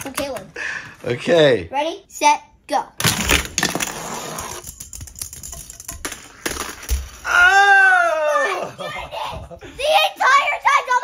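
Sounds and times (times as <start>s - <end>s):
child wordless shout: 7.3s - 11.0s.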